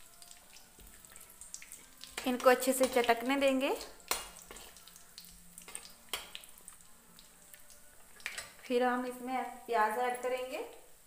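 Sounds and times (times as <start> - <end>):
seeds sizzling in hot oil: 0.0 - 11.0
steel spoon stirring: 3.8 - 9.2.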